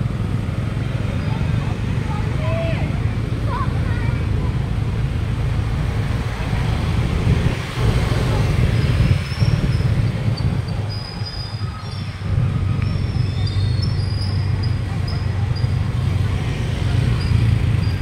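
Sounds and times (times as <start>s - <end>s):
passing motorbikes and cars: 0.0s - 18.0s.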